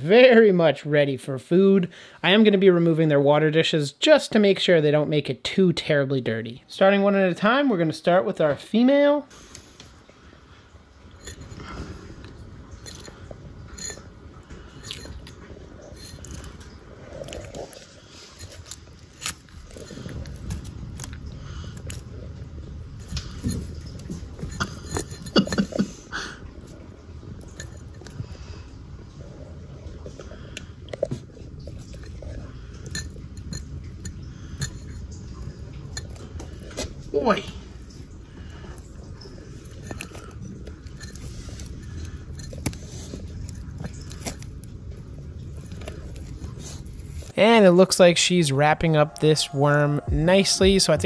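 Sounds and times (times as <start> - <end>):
claws scraping on clay dish: 11.1 - 22.3, 22.9 - 26.0, 30.4 - 44.8.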